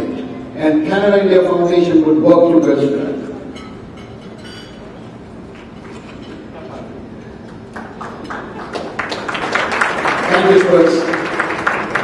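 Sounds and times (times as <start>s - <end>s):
audience applause: 7.7s - 12.0s.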